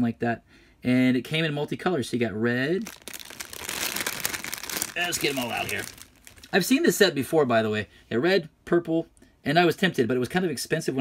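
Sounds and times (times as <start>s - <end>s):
plastic bag crinkling: 2.8s - 6.9s.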